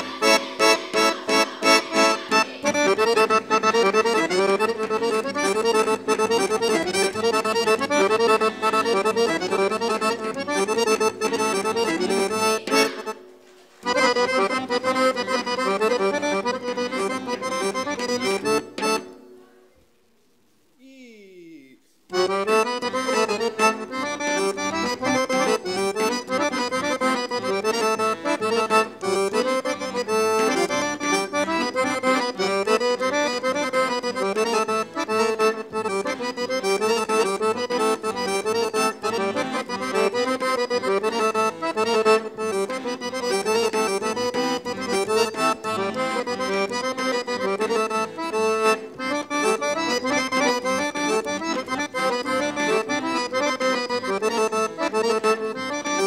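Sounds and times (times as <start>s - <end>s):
accordion-led folk dance music: 0.0s - 19.4s, 22.1s - 56.0s.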